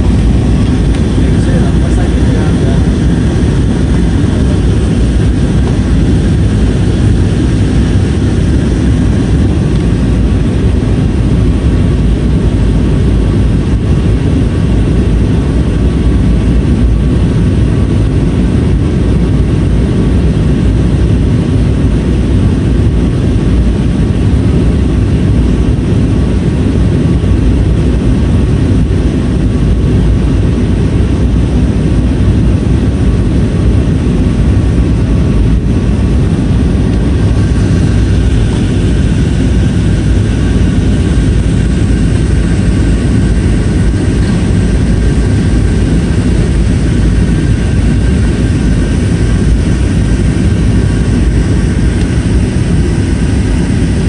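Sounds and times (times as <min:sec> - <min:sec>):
jet cabin engine rush: 0:00.0 - 0:54.0.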